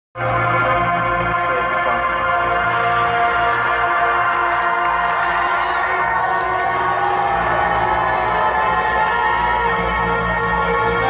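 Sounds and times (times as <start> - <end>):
crowd cheering and shouting: 0.6 - 11.0.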